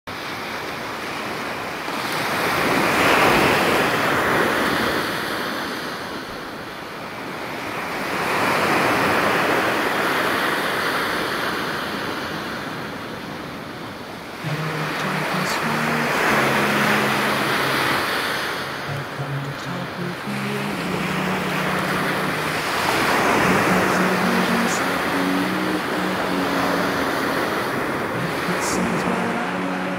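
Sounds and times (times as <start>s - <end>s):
sea waves washing onto shore: 0.2s - 29.9s
low held music notes: 14.4s - 29.9s.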